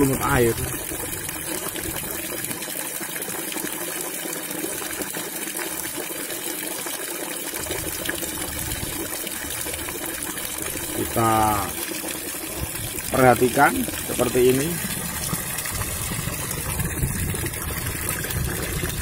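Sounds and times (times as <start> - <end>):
tap water pouring into tub: 0.0 - 19.0.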